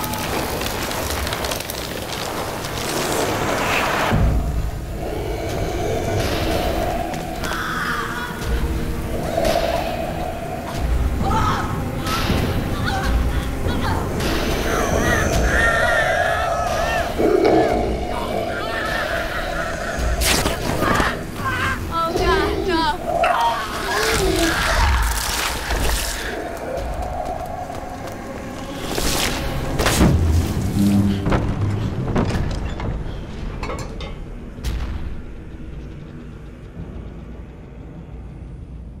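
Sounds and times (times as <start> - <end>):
steady low drone: 3.9 - 39.0
people screaming and wailing: 5.0 - 28.8.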